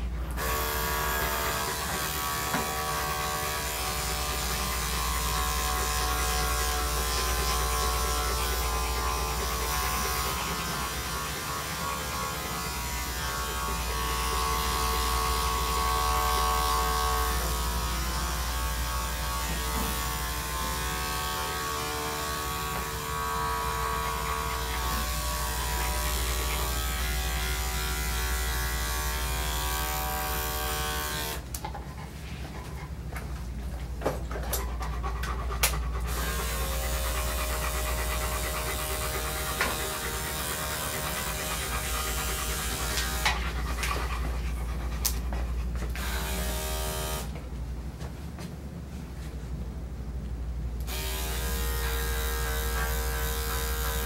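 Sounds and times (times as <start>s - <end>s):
electric clippers running: 0.4s - 31.4s, 35.6s - 44.0s, 46.0s - 47.4s, 50.8s - 54.0s.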